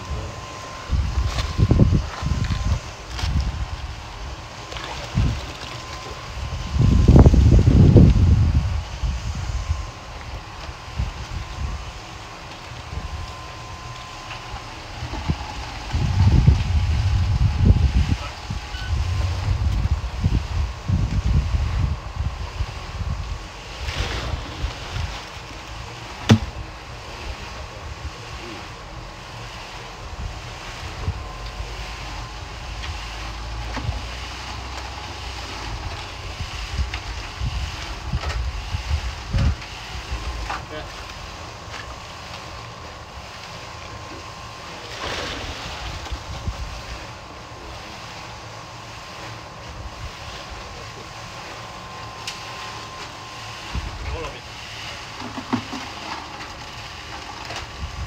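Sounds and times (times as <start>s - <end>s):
wind buffeting microphone: 0.0s - 25.2s, 35.6s - 40.5s, 45.4s - 47.1s, 57.7s - 58.0s
sharp knocks: 26.3s - 26.5s.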